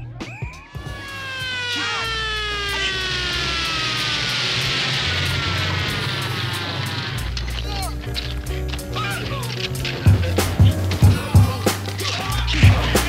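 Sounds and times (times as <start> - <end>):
bass line: 0.0 - 13.0
long tone gliding down in pitch: 0.8 - 7.3
hiss: 1.1 - 13.0.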